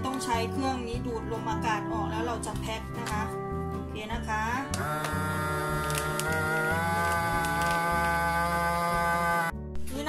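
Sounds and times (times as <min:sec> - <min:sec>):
vacuum sealer pump humming: 0:04.7 - 0:09.5.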